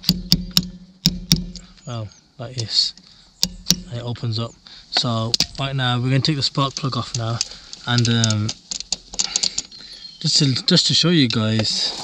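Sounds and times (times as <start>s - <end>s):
hammer striking metal tool: 0.0s - 1.7s, 3.4s - 3.9s.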